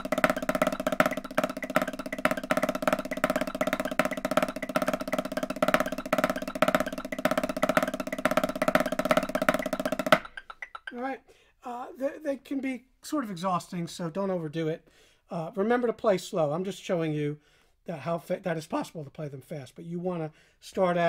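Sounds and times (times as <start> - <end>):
snare drum roll with accents: 0.0 - 10.9.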